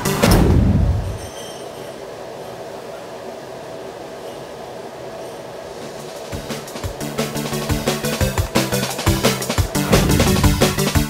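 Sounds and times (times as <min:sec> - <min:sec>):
train rumbling with whine: 0:00.0 - 0:11.0.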